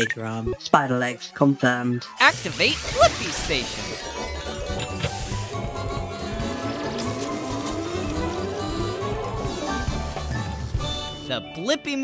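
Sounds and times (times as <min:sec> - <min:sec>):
cartoon background music: 0:00.0 - 0:12.0
machine sound rising in pitch: 0:03.6 - 0:11.2.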